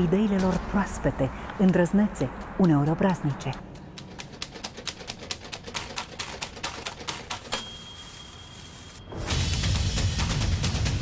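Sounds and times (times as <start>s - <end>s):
rapid sharp clicks: 2.4s - 7.6s.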